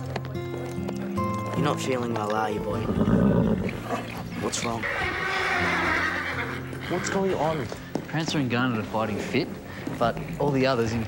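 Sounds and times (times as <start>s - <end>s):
horse whinnying: 2.6s - 7.9s.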